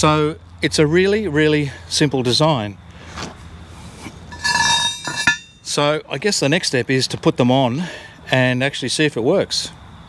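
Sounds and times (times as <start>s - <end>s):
metal parts clinking: 4.3s - 5.7s
metallic ring: 4.3s - 5.8s.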